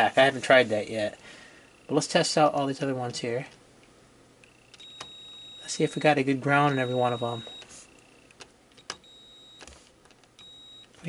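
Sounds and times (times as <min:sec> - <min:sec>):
logic probe beeping: 0:04.4 - 0:09.7, 0:10.4 - 0:11.0.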